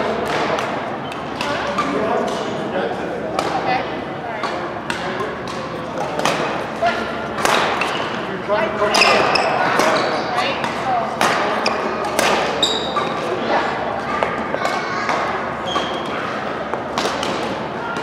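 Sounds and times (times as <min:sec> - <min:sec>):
rackets striking shuttlecock: 0:04.4 - 0:06.8, 0:07.4 - 0:08.2, 0:08.9 - 0:13.3
shoe squeaks: 0:07.7 - 0:08.2, 0:08.9 - 0:10.5, 0:11.5 - 0:13.3, 0:15.6 - 0:16.2.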